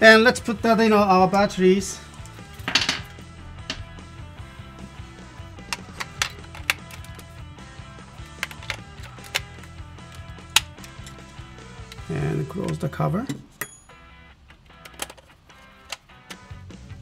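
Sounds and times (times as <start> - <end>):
background music: 0.0 - 17.0
plastic clicks and taps: 5.7 - 7.3, 8.2 - 11.2.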